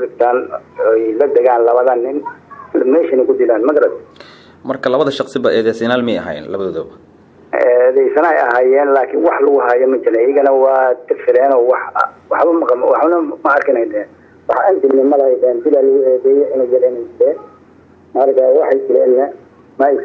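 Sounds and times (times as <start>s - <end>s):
person talking over telephone line: 0.0s - 6.8s, 7.5s - 20.0s.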